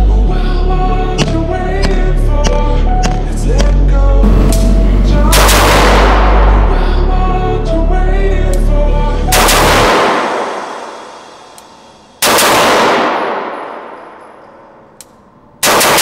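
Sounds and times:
music: 0.0s - 16.0s
rifle shots with echo: 5.3s - 6.6s, 9.3s - 11.1s, 12.2s - 14.8s, 15.6s - 16.0s.

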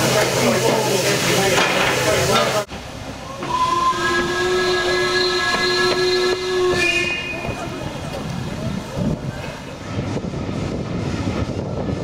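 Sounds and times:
crowd chatter: 0.0s - 3.6s, 6.7s - 10.3s
steam hissing from locomotive: 0.0s - 12.0s
steam whistle: 3.2s - 7.6s.

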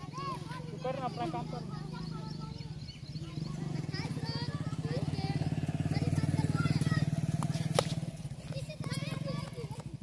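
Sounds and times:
engine throbbing: 3.2s - 10.0s.

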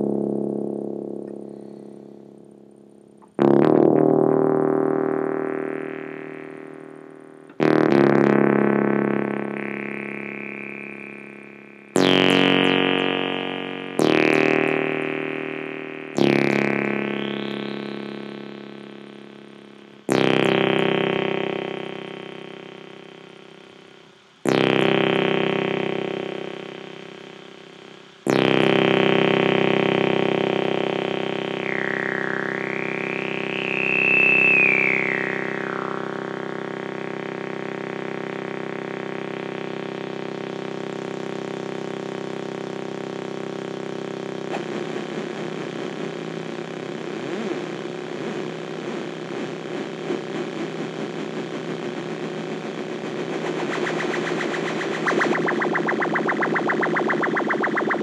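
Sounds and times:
synthesizer chords: 0.0s - 58.0s.

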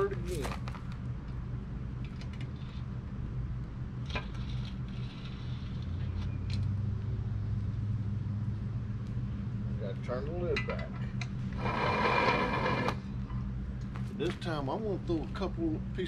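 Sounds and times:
low engine-like rumble: 0.0s - 16.0s.

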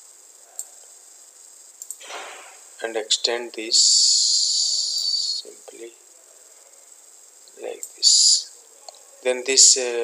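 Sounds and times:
person hissing an s sound: 3.7s - 5.5s, 8.0s - 8.5s.

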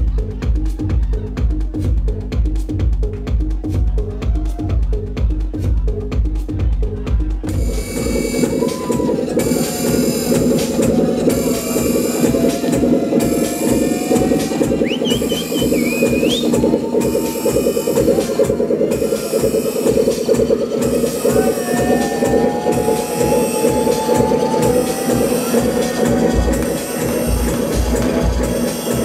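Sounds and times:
kick drum: 0.0s - 29.0s
techno music over sound system: 0.0s - 29.0s
fast-pulsing synth: 7.5s - 29.0s
shrill whistle-like glide: 11.8s - 18.3s.

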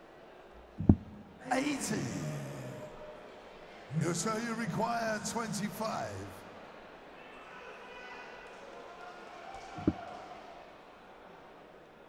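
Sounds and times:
murmur of hall crowd: 0.0s - 12.0s
dart striking dartboard: 9.8s - 10.0s.

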